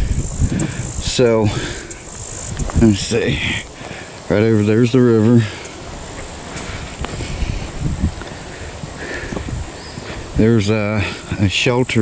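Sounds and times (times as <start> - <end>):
footsteps on sandy dirt road: 0.0 - 11.7
faint high insect drone: 0.0 - 12.0.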